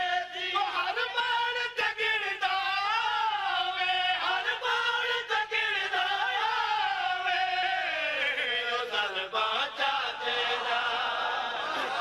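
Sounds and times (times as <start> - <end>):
men chanting together: 3.3 - 12.0.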